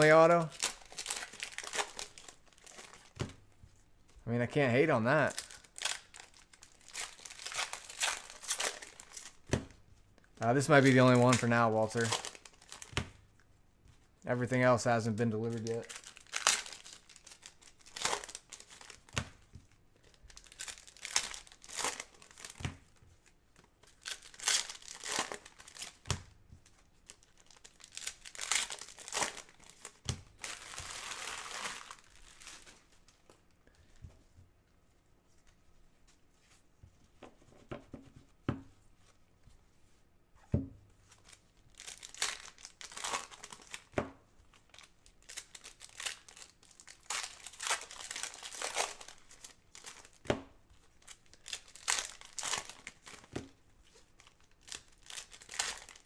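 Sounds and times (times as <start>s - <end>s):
foil wrappers crinkling and tearing: 0.0s - 3.2s, 5.1s - 9.5s, 10.4s - 12.9s, 14.4s - 19.2s, 20.0s - 22.6s, 23.6s - 33.4s, 41.1s - 43.9s, 44.5s - 50.2s, 50.8s - 53.3s, 53.9s - 56.0s.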